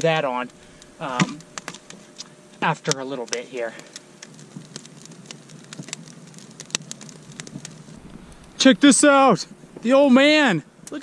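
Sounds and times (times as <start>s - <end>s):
faint fire hiss: 0.0s - 11.0s
fire crackling and popping: 0.0s - 11.0s.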